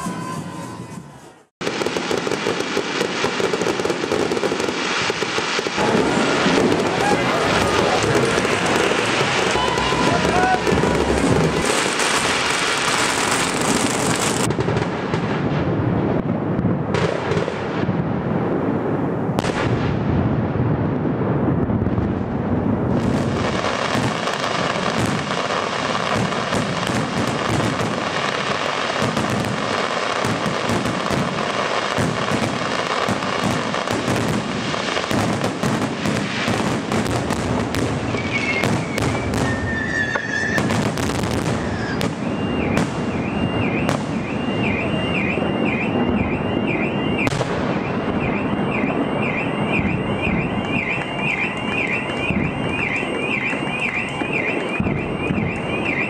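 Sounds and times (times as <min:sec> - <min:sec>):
fireworks whistles: 0:00.0 - 0:15.0, 0:22.8 - 0:56.0
fireworks bursting: 0:00.0 - 0:56.0
warbling electronic alarm: 0:05.8 - 0:14.5, 0:38.3 - 0:56.0.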